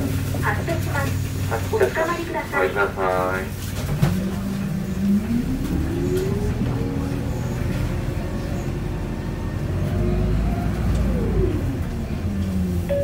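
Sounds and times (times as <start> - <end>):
diesel bus engine accelerating: 0.0 - 13.0.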